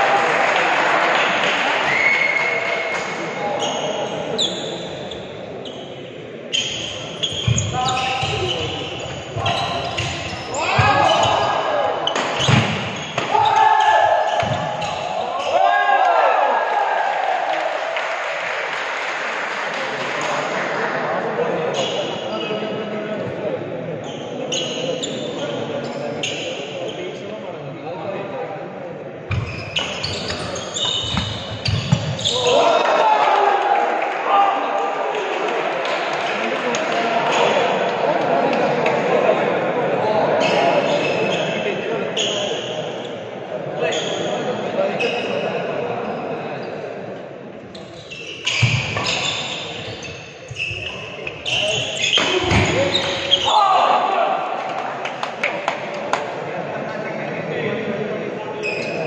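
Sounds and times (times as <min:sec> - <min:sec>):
voices of players and spectators: 0:00.0 - 0:59.0.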